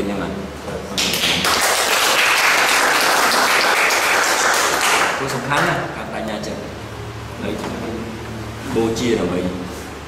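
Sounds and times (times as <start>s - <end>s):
people applauding: 1.0s - 5.7s.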